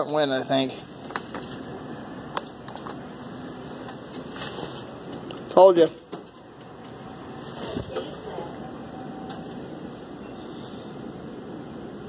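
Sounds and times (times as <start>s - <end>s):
faint motor hum: 0.0s - 12.0s
steady background noise: 0.0s - 12.0s.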